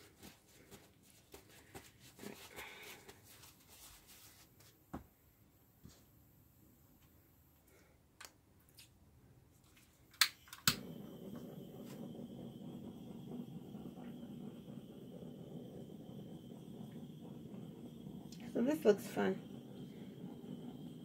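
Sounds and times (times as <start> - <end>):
torch igniter clicks: 10.2 - 13.0
torch flame hissing: 10.6 - 21.0.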